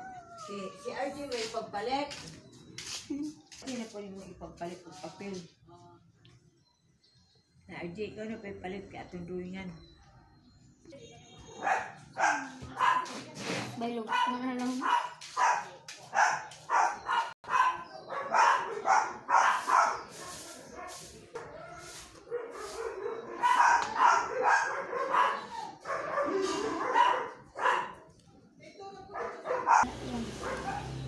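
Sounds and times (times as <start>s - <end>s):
dog barking in sharp yaps: 14.1s - 20.0s.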